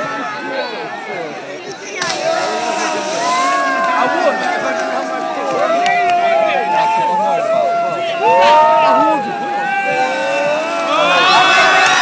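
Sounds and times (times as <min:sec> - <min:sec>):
crowd shouting and cheering: 0:00.0 - 0:12.0
crowd voices: 0:00.0 - 0:12.0
splash into water: 0:01.9 - 0:04.6.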